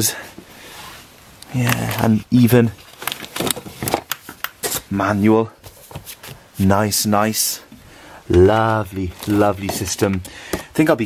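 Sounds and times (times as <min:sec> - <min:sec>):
handling clicks taps and rustles: 0:07.7 - 0:11.0.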